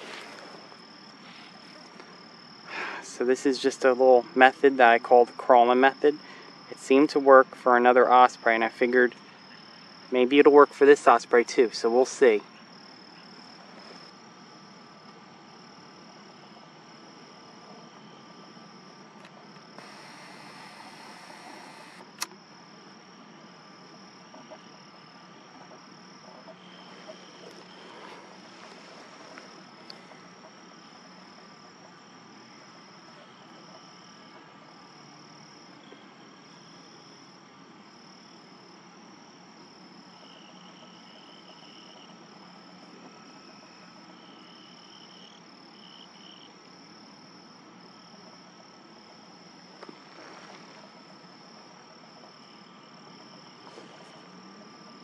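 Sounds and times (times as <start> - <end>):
rustling hiss: 0.0 - 7.4, 19.2 - 22.3, 26.8 - 30.4
insects chirping: 0.0 - 55.0.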